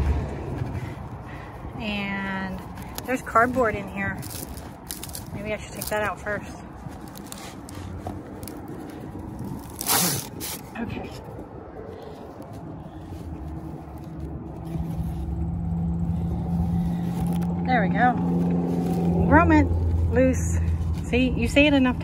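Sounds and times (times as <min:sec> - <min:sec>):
engine hum: 0:00.0 - 0:22.0
sharp scrape: 0:09.4 - 0:10.8.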